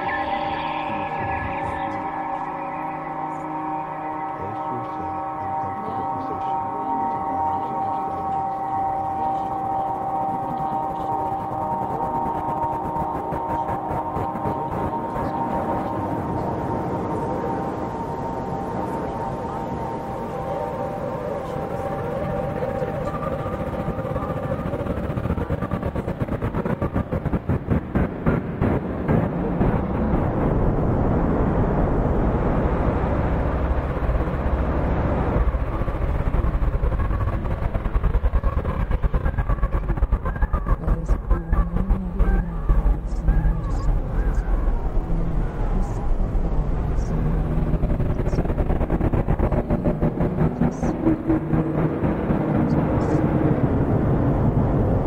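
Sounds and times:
rapid fluttering pulses: 0.0 - 55.0.

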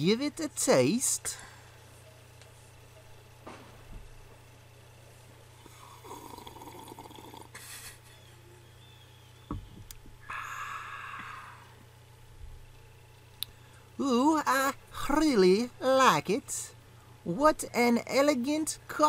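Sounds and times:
slurping coffee: 5.8 - 7.6
click: 13.4 - 13.6.

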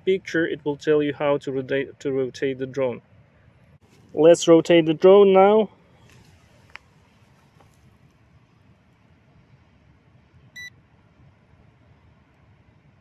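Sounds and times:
faint hiss: 2.9 - 13.0.

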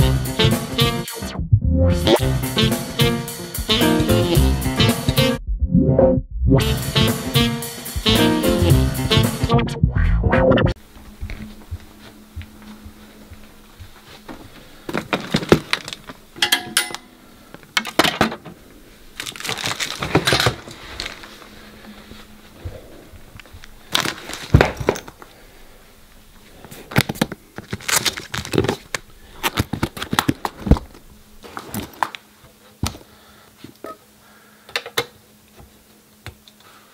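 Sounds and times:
handling knocks and rustles: 10.9 - 18.6, 19.2 - 25.4, 26.6 - 34.0.

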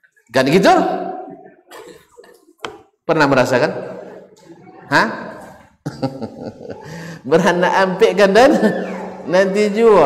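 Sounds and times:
man chuckling: 5.8 - 7.2.

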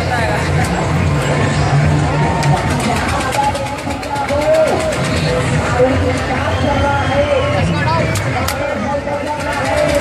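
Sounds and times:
people talking: 0.0 - 1.6, 2.4 - 10.0.

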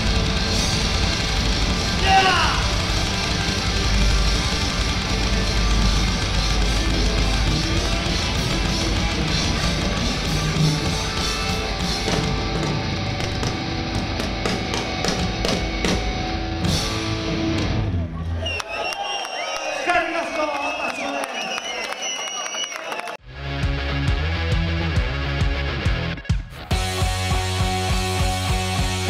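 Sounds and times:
people shouting and cheering: 0.0 - 15.4, 17.0 - 23.6
punk rock band playing: 0.0 - 18.0, 23.3 - 29.0.

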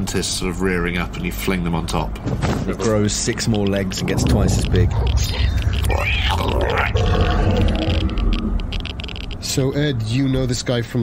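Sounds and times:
steady low rumble: 2.9 - 10.2.

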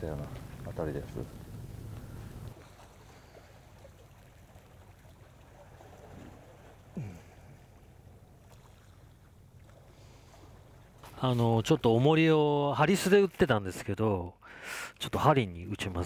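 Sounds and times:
sea water lapping: 0.0 - 13.6
light wind: 0.0 - 16.0.

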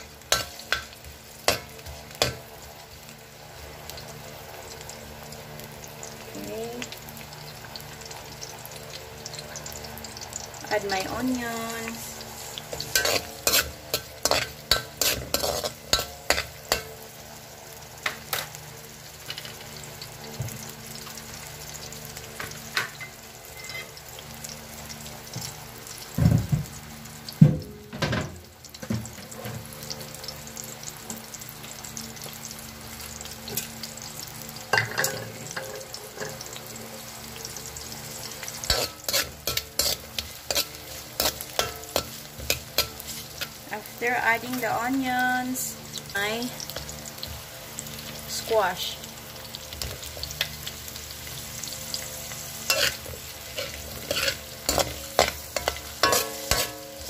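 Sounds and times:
vegetables sizzling in oil: 0.0 - 57.0
metal ladle scraping wok: 11.9 - 16.9, 38.6 - 43.6, 52.6 - 57.0.

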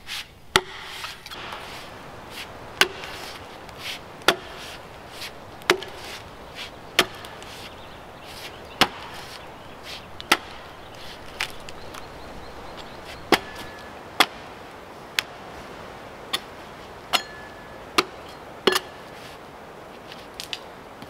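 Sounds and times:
axe chopping log: 0.5 - 11.7, 13.2 - 14.5, 17.1 - 19.0.

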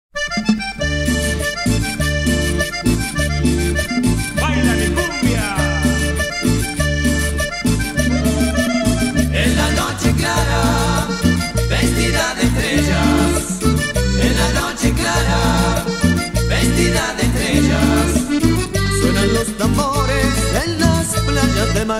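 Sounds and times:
accordion melody: 0.1 - 21.9
bass line: 0.2 - 21.9
percussion: 0.2 - 21.9.

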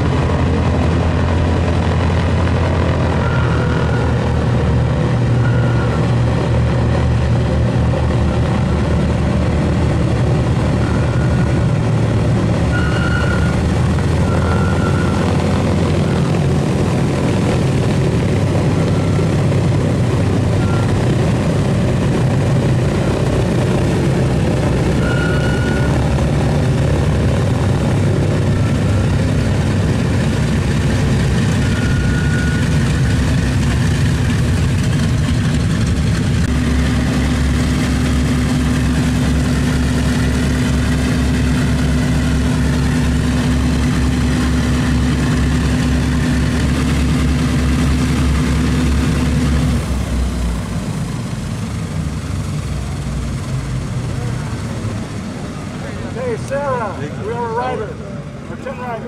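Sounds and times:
radial aircraft engines droning: 0.0 - 59.0.

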